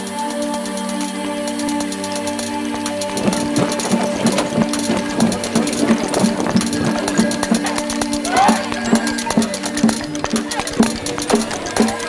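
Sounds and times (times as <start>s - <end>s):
rhythmic drumming: 0.0s - 12.0s
sustained droning tones: 0.0s - 12.0s
quick high ticking: 0.3s - 12.0s.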